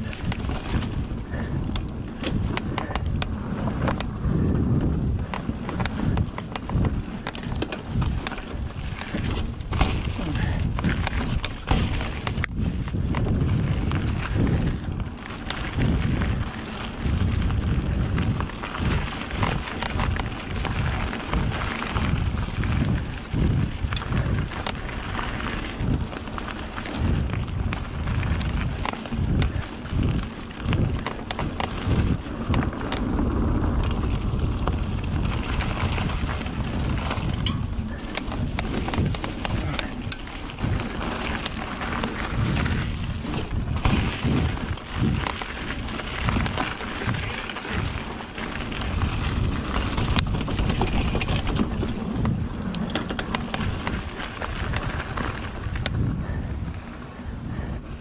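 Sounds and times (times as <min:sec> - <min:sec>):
bike frame knocks and rattles: 0:00.0 - 0:33.2, 0:33.8 - 0:58.0
bike tyres rumbling on dirt: 0:00.0 - 0:58.0
short high squeaks: 0:04.3 - 0:04.9, 0:36.4 - 0:36.7, 0:41.6 - 0:42.8, 0:54.9 - 0:58.0.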